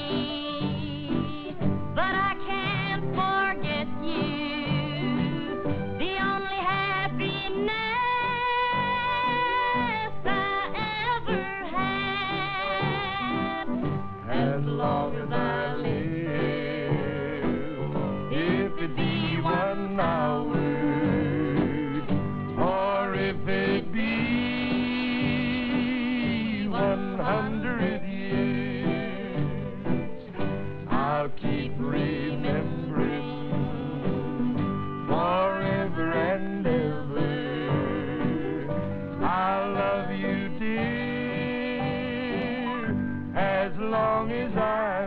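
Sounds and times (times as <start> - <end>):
acoustic guitar: 0.0 - 45.0
man and woman singing duet: 0.0 - 45.0.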